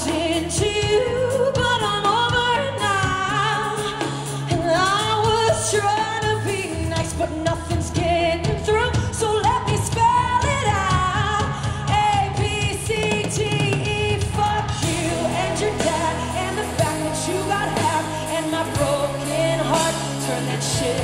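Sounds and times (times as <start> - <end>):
pop-rock band playing: 0.0 - 21.0
woman singing: 0.0 - 21.0.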